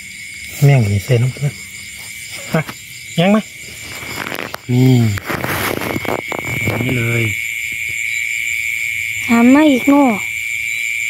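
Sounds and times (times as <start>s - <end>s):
high-pitched insect trill: 0.0s - 11.0s
rustling: 3.6s - 7.1s.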